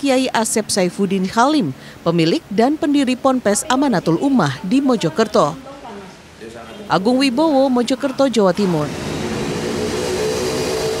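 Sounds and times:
faint steady hum: 0:00.0 - 0:11.0
steady rushing noise: 0:08.6 - 0:11.0.

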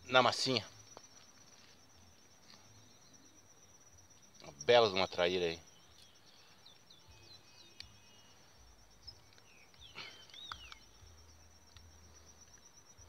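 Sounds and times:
insect trill: 0:00.0 - 0:13.0
bird chirps: 0:04.4 - 0:13.0.

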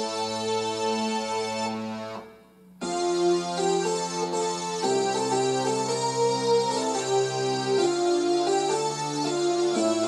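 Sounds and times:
electronic keyboard playing: 0:00.0 - 0:10.0.

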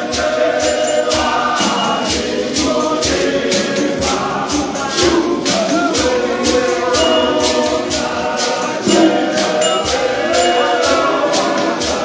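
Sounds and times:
men's choir singing in harmony: 0:00.0 - 0:12.0
sharp percussion strokes: 0:00.0 - 0:12.0.

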